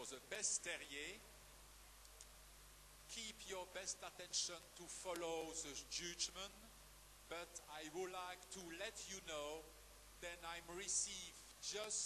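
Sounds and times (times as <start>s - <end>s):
faint background hiss: 0.0s - 12.0s
faint click: 2.0s - 2.4s.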